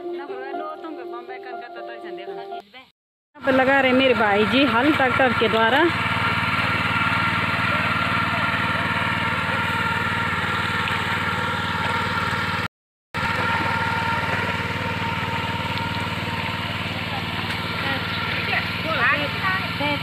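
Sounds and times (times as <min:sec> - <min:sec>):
power tiller engine running: 0:03.4 - 0:20.0.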